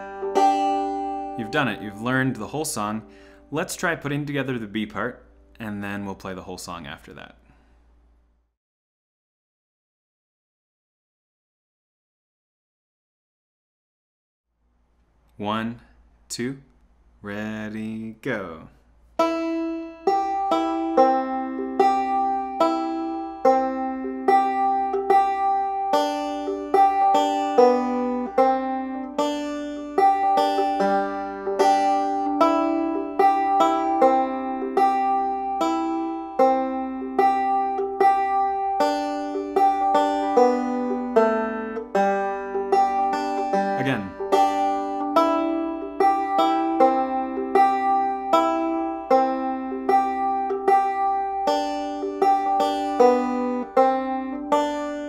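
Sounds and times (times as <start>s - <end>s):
banjo picking: 0.0s - 7.2s, 19.2s - 55.0s.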